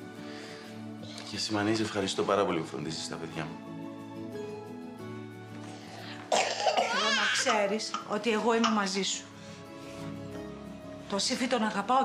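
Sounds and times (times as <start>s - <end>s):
soft background music: 0.0s - 12.0s
woman coughing: 6.3s - 8.9s
woman speaking: 6.8s - 9.3s, 11.1s - 12.0s.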